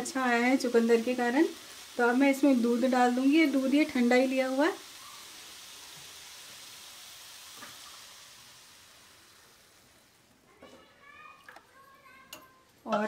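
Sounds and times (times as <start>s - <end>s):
vegetables sizzling in a pan: 0.0s - 13.0s
milk poured into hot pan: 4.8s - 10.3s.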